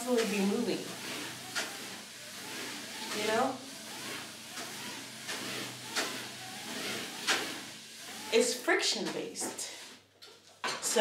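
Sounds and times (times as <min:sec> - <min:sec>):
treadmill belt rolling hiss: 0:00.0 - 0:10.0.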